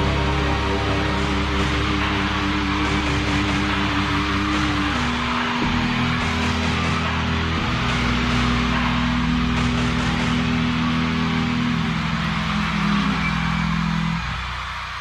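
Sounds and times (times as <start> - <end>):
distorted guitar chord: 0.0 - 3.7
live band noisy wash: 0.0 - 14.6.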